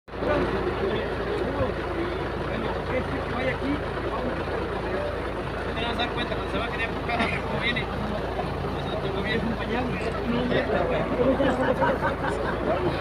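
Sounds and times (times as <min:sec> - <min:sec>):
low engine rumble: 0:00.1 - 0:13.0
men talking over one another: 0:00.1 - 0:13.0.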